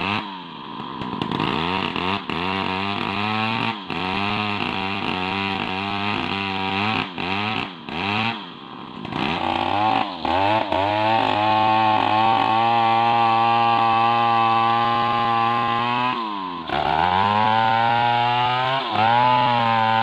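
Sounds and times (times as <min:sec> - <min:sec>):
chainsaw cutting wood: 0:00.0 - 0:20.0.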